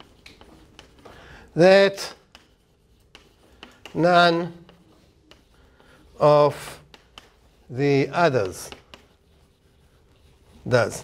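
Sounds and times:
chalk tapping and scratching: 0.0s - 11.0s.

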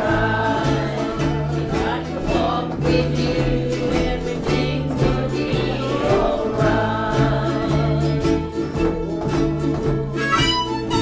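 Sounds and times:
double bass line: 0.0s - 11.0s
group of voices singing: 0.0s - 11.0s
ukuleles strumming: 0.0s - 11.0s.

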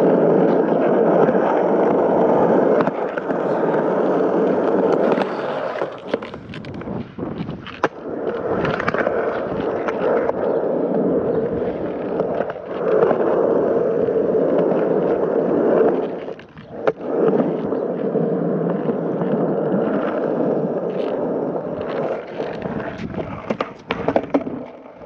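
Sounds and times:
skateboard clack: 0.0s - 25.0s
skateboard rolling on concrete: 0.0s - 25.0s.

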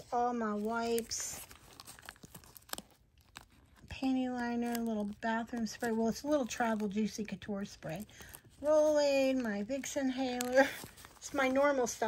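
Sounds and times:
faint crinkling of packets: 0.0s - 12.0s.

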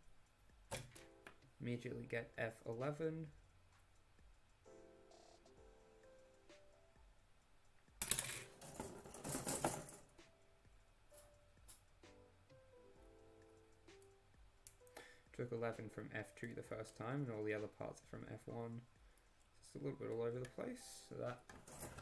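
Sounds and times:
faint background music: 0.0s - 22.0s
plastic parts clattering on paper: 21.5s - 22.0s.

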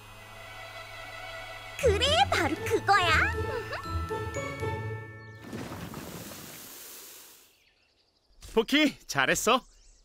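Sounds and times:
chiming musical cue: 3.7s - 5.4s.

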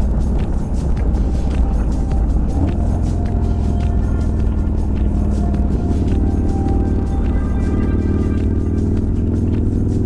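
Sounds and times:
motorcycle engine running: 0.0s - 10.0s
music playing: 0.0s - 10.0s.

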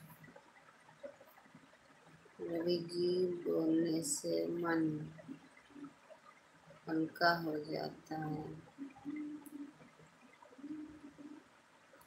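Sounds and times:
woman speaking: 2.4s - 5.2s, 6.9s - 8.6s.

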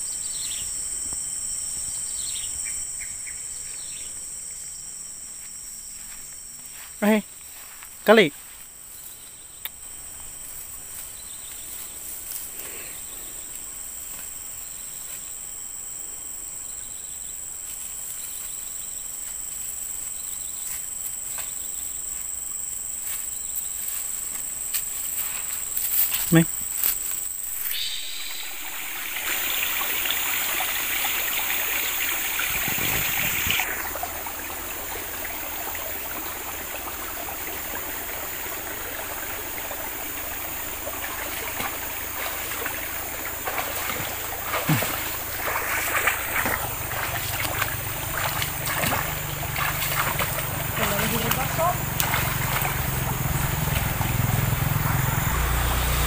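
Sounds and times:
insects droning: 0.0s - 56.0s.

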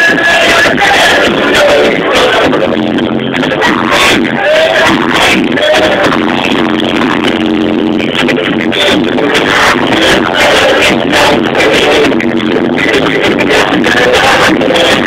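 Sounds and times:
live pop band through speakers: 0.0s - 15.0s
steady drum beat: 0.0s - 15.0s.

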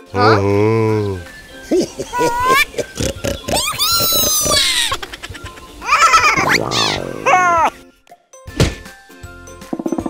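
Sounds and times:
cartoon animal voices: 2.0s - 7.8s.

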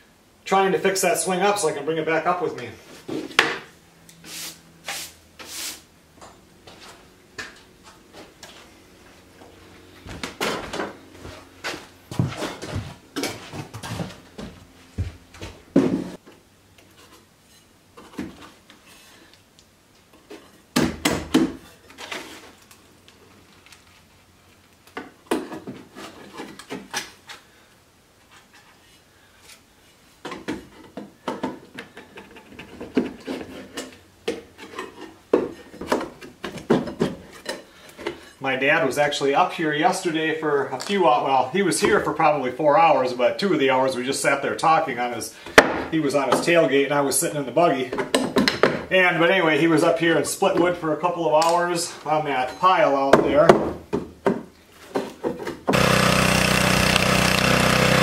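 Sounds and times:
wood-on-wood knocks and clatter: 30.2s - 37.5s, 48.0s - 48.9s.

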